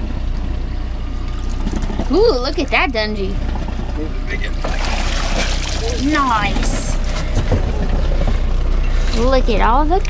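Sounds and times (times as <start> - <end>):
boat motor idling: 0.0 - 10.0.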